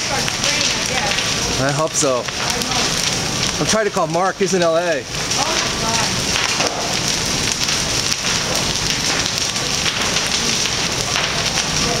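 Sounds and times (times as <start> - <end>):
large fire crackling: 0.0 - 12.0.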